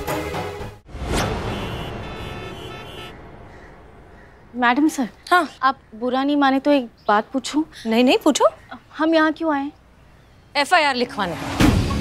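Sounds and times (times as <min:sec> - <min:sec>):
road traffic rumble: 0:01.2 - 0:11.5.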